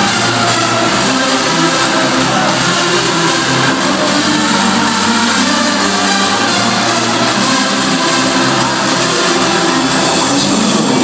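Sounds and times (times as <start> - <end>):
loud hardstyle dance music: 0.0 - 11.0.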